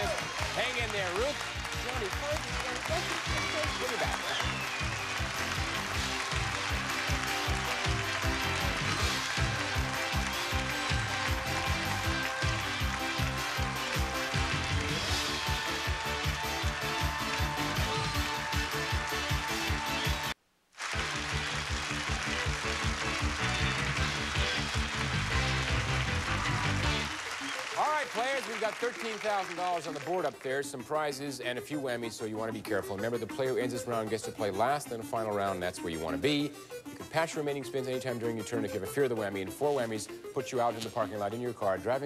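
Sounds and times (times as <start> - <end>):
upbeat game show music: 0.0 - 42.0.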